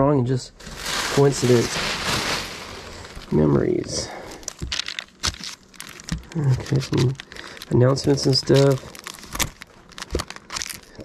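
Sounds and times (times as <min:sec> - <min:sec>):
paper pages rustling and crackling: 0:00.6 - 0:11.0.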